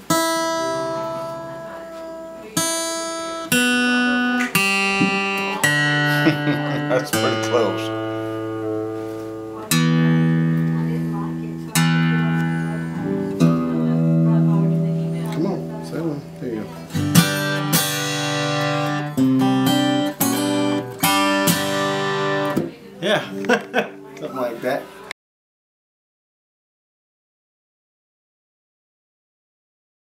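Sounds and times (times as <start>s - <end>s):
acoustic guitar chords strummed: 0.0s - 25.1s.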